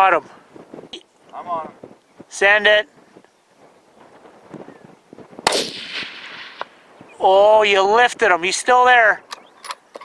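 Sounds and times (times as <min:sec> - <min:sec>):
rifle shot: 0:05.4 - 0:06.8.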